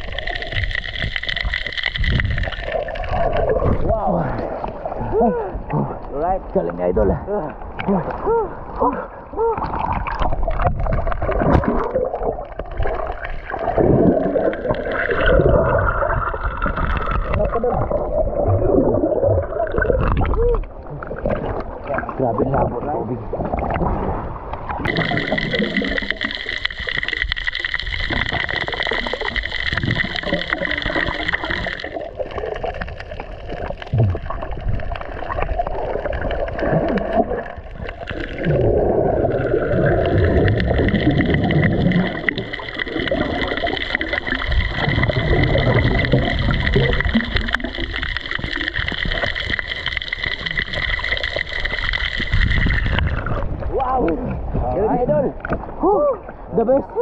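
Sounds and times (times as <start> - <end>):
water churning and bubbling: 0.0 - 57.0.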